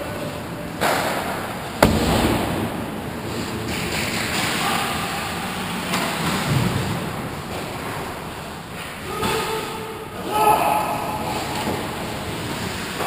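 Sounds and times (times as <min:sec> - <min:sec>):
sharp knock: 0:01.8 - 0:02.9
skates scraping ice: 0:03.1 - 0:04.8, 0:11.2 - 0:13.0.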